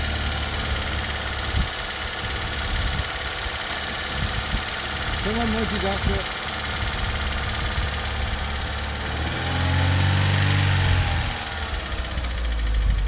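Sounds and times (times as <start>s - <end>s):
car engine idling: 0.0s - 13.0s
louder engine rising and falling: 7.5s - 13.0s.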